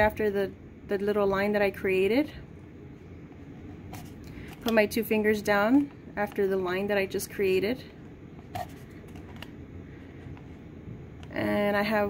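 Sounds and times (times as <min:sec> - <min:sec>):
low room noise: 0:00.0 - 0:12.0
paper cup rustling in hands: 0:03.6 - 0:04.7, 0:08.4 - 0:09.5.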